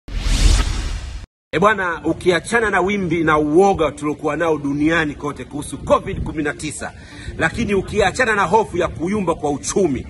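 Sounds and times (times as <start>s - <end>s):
whoosh sound effect: 0.1s - 1.3s.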